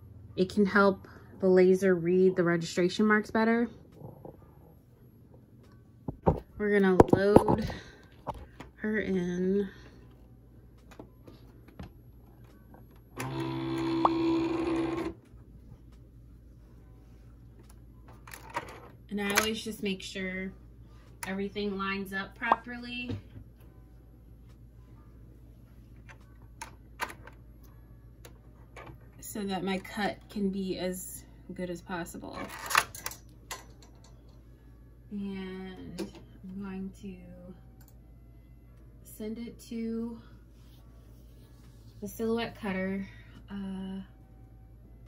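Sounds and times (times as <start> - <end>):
faint low hum: 0.0 - 45.0.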